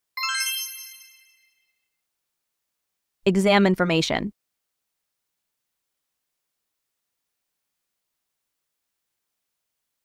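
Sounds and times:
bright electronic chime: 0:00.2 - 0:01.6.

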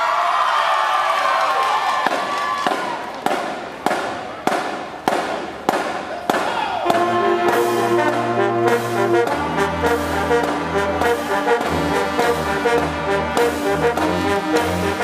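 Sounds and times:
drum hits: 0:03.3 - 0:15.0
marching band held notes: 0:06.6 - 0:15.0
brass chord: 0:06.8 - 0:15.0.

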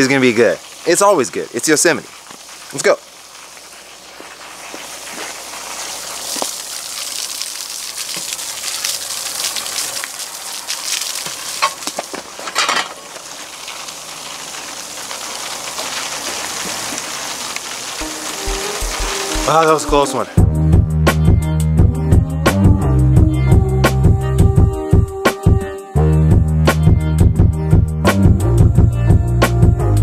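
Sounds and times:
hose water spraying: 0:00.0 - 0:20.4.

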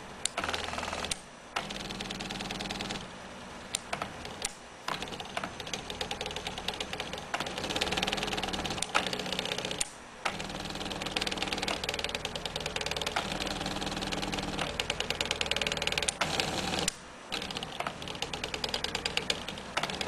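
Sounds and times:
plotter carriage motors whirring: 0:00.2 - 0:03.1, 0:03.7 - 0:20.0.

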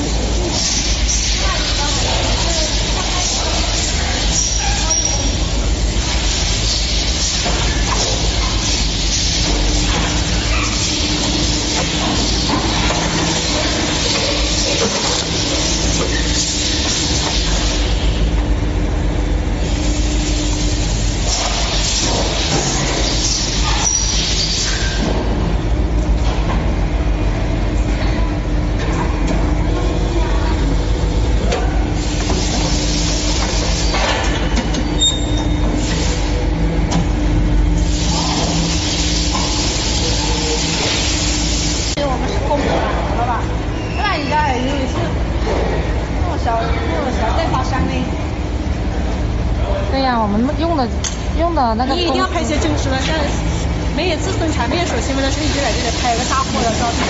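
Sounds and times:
factory machinery rumble and hiss: 0:00.0 - 0:57.0.

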